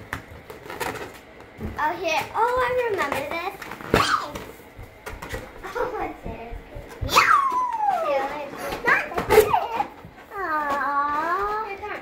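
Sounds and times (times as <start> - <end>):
child's high cry: 7.0 - 8.3.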